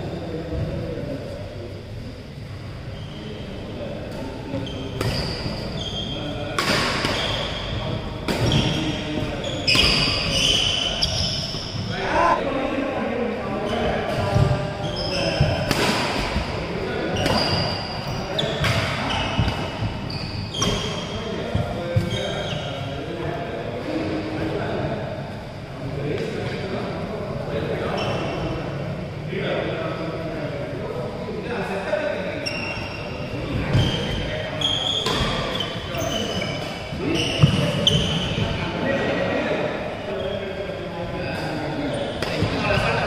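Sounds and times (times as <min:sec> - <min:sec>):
shoes squeaking on floor: 0:08.4 - 0:12.4, 0:17.2 - 0:21.1, 0:33.7 - 0:38.4.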